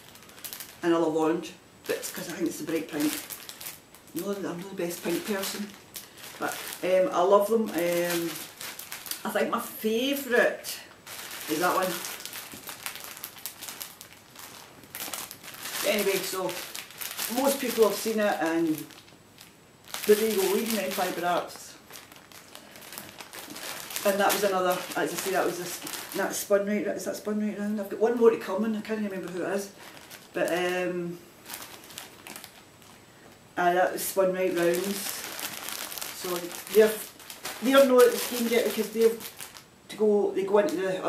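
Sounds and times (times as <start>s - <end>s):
plastic bag crinkling: 0.0s - 41.0s.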